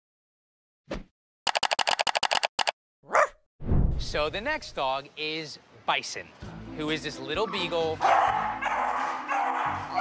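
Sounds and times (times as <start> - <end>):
dog barks: 3.1 - 3.4, 8.0 - 10.0.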